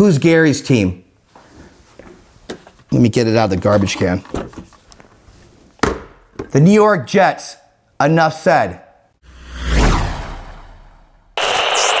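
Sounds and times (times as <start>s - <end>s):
deep hit: 9.3s - 11.4s
loud noisy burst: 9.8s - 12.0s.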